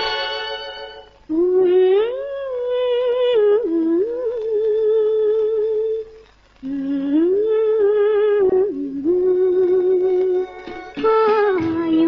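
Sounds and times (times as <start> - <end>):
woman humming: 1.3 - 12.0.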